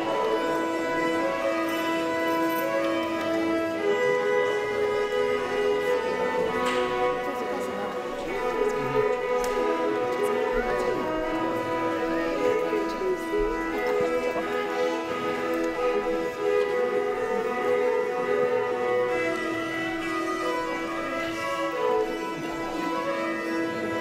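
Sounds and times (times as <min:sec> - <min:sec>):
fiddle drone notes: 0:00.0 - 0:24.0
two fiddles playing a tune: 0:00.0 - 0:24.0.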